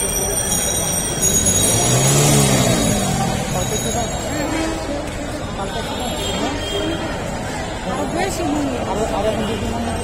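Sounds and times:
crowd voices: 0.0s - 10.0s
traffic: 0.0s - 10.0s.

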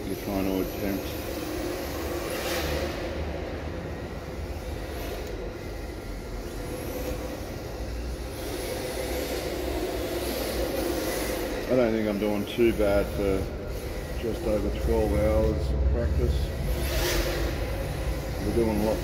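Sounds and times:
rc car motor whining: 0.0s - 19.0s.

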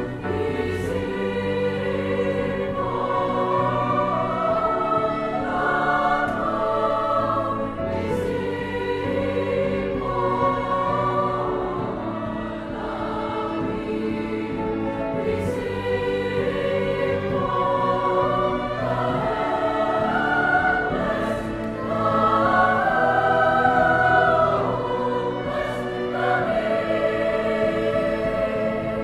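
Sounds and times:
choir singing in harmony: 0.0s - 29.0s
piano: 0.0s - 29.0s
strings: 0.0s - 29.0s.

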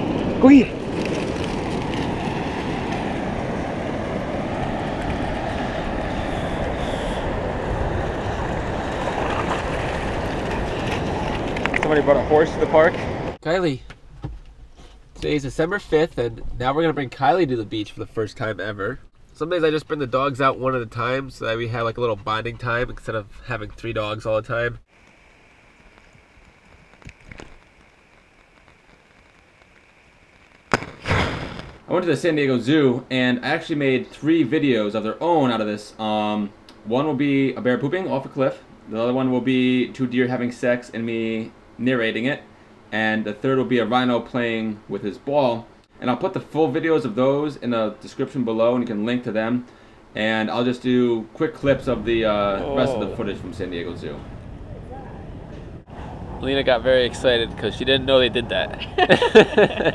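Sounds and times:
ocean surf breaking: 0.0s - 13.4s.

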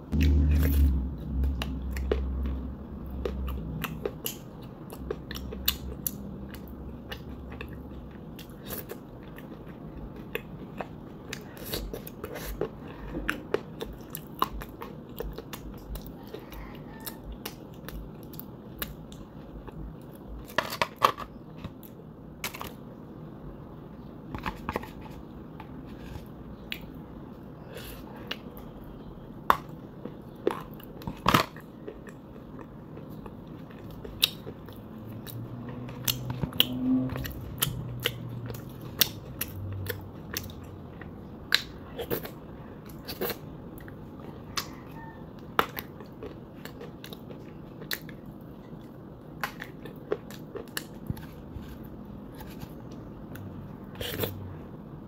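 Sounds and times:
chewing crunchy clay: 0.1s - 20.9s.

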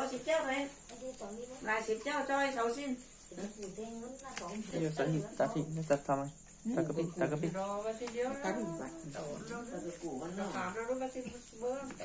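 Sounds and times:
faint cricket trill: 0.0s - 12.0s
woman speaking: 7.5s - 12.0s.

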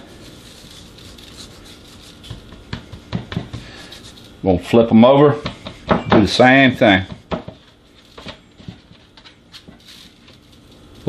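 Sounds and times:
hands rubbing meat: 0.0s - 4.5s.

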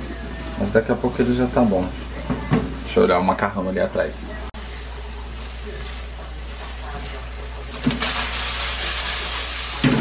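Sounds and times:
chicken frying in oil: 4.6s - 10.0s.

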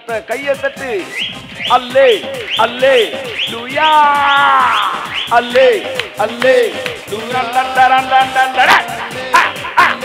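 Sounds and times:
man shouting: 1.7s - 10.0s.

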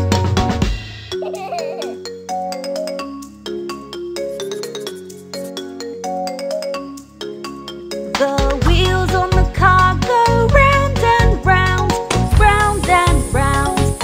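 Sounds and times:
drums: 0.0s - 2.0s, 7.9s - 14.0s.

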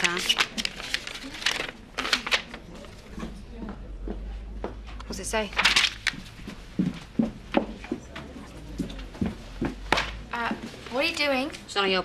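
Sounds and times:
paper rustling: 0.0s - 3.3s, 5.5s - 6.7s.

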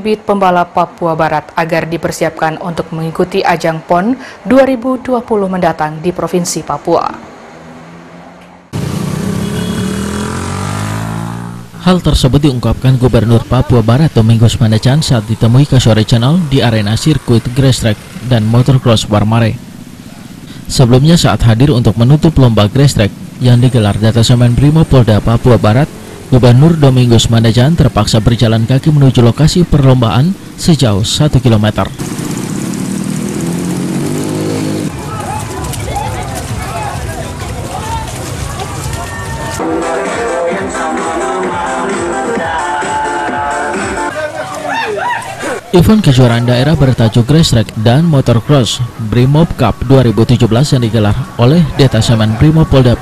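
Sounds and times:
other vehicle engines: 0.0s - 53.0s
motorcycle engine passing by: 7.1s - 11.8s, 16.1s - 27.2s, 31.9s - 39.6s.

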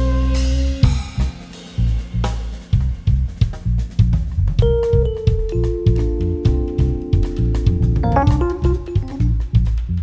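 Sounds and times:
bass notes: 0.0s - 10.0s
drum kit beat: 0.0s - 10.0s
keyboard playing: 4.6s - 9.6s.

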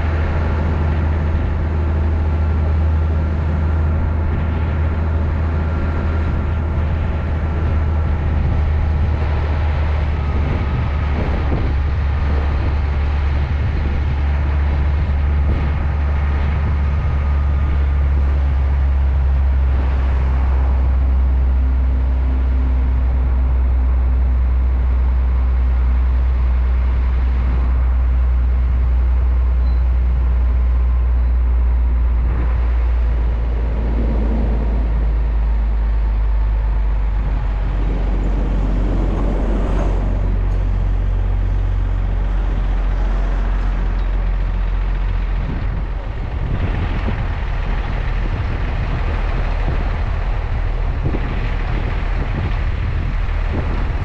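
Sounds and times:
road and wind noise: 0.0s - 54.0s
truck engine droning: 0.0s - 54.0s.

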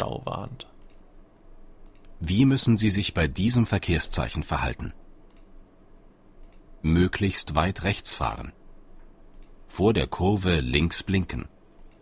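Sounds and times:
soft computer mouse clicks: 0.7s - 1.2s, 1.8s - 2.2s, 5.2s - 5.6s, 6.4s - 6.7s, 9.0s - 9.6s, 11.7s - 12.0s.

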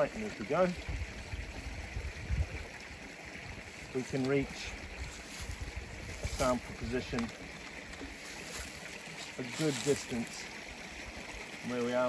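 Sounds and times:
flowing water rushing: 0.0s - 12.0s
wind rumble on microphone: 0.8s - 3.6s, 4.7s - 7.2s.

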